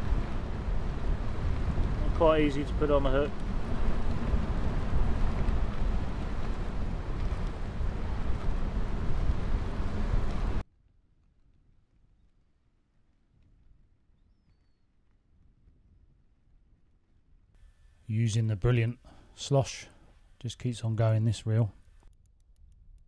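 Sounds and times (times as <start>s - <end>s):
wind buffeting microphone: 0.0s - 10.6s.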